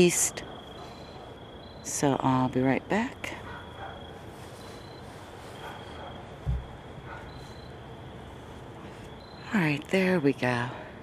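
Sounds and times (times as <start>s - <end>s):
faint high insect chirps: 0.0s - 10.9s
low thump: 6.4s - 6.8s.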